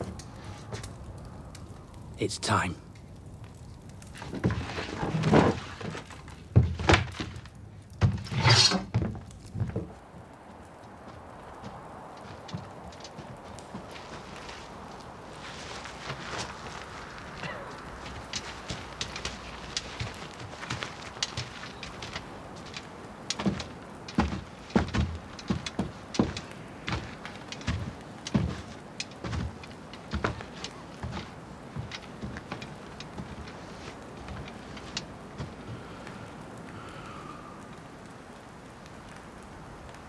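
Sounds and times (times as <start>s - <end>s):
steady wind-like hiss: 0.0s - 40.0s.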